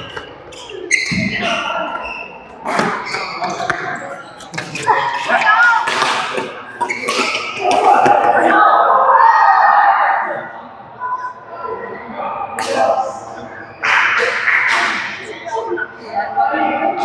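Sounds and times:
rackets striking shuttlecock: 5.8 - 8.1.

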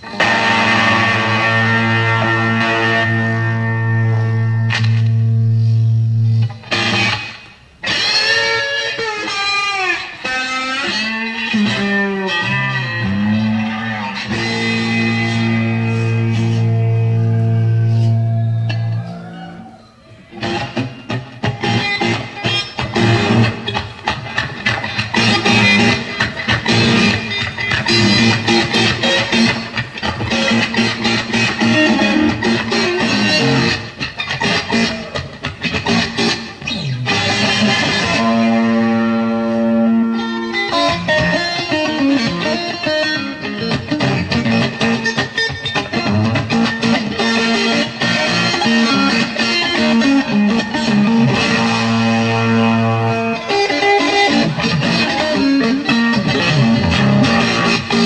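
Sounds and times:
bass guitar: 0.0 - 8.6, 10.6 - 58.0
distorted electric guitar: 0.0 - 58.0
drums: 20.3 - 39.0, 53.5 - 58.0.

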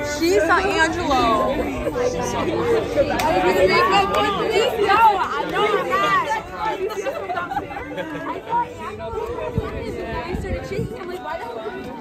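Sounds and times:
women talking excitedly: 0.0 - 12.0.

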